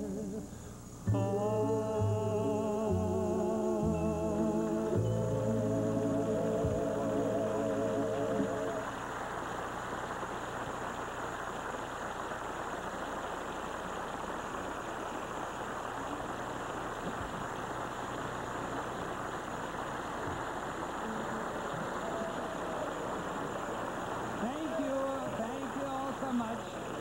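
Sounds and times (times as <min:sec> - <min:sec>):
audience applauding: 0:14.9 - 0:27.0.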